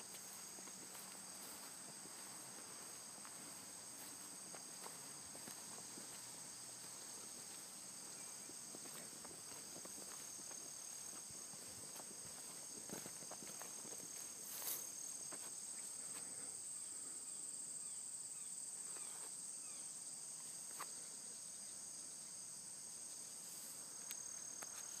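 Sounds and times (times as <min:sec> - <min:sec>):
crickets trilling: 0:00.0 - 0:25.0.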